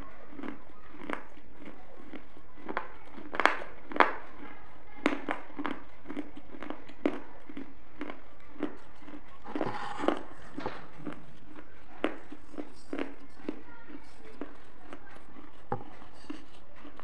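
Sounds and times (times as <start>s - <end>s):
mouth chewing: 0.0s - 17.0s.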